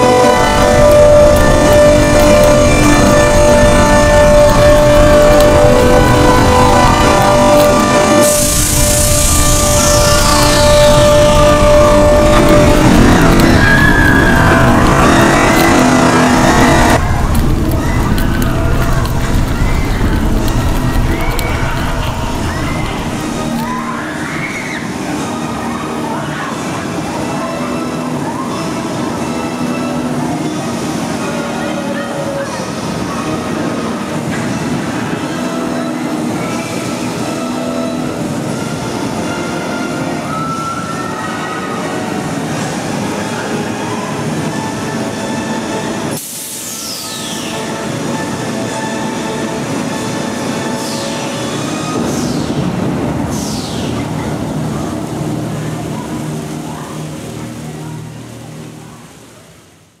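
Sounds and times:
ride machinery din: 0.0s - 23.8s
high falling sweeps: 0.0s - 25.1s.

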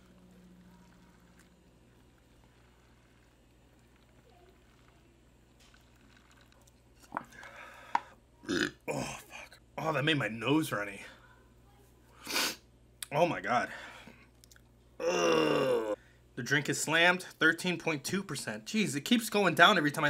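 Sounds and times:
drinking through a straw: 0.0s - 6.7s
person burping: 8.4s - 9.2s, 15.0s - 16.0s.

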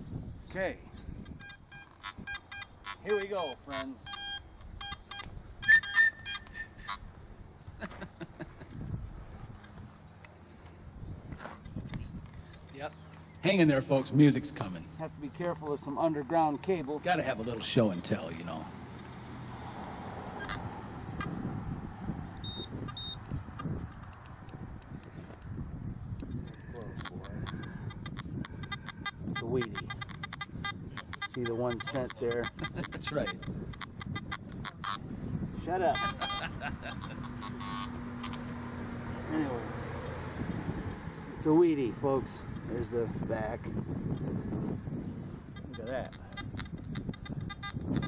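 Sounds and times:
metal detector beeping: 1.2s - 7.0s, 20.4s - 20.6s, 22.4s - 24.1s, 26.9s - 35.0s, 35.9s - 38.5s, 45.5s - 48.0s
scuffing and handling noise: 9.6s - 11.8s.

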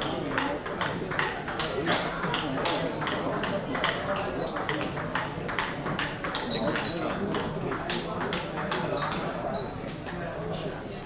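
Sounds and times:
murmur of voices: 0.0s - 11.0s
table tennis ball clicking: 2.3s - 9.3s.

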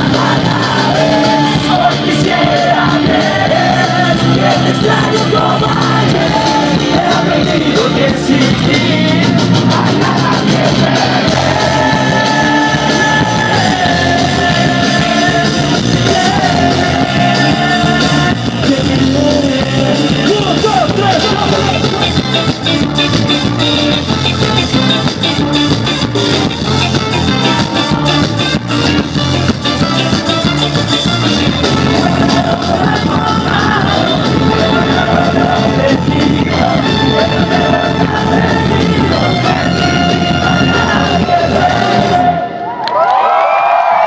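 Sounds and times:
live ska band music: 0.0s - 42.6s
crowd shouting and cheering: 0.0s - 44.0s.

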